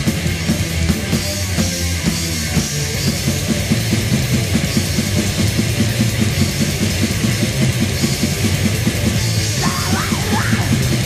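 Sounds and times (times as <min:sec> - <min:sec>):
distorted guitar and bass: 0:00.0 - 0:11.0
fast drumbeat: 0:00.0 - 0:11.0.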